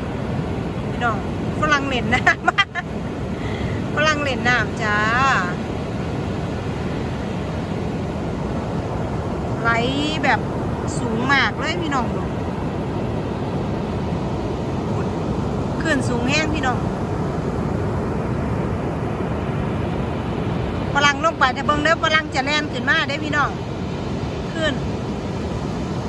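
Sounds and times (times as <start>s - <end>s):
ocean surf breaking on beach: 0.0s - 26.0s.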